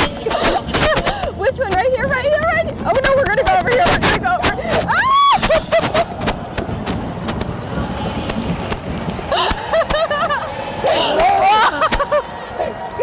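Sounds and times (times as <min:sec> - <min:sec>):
horse hooves knocking: 0:00.0 - 0:10.5.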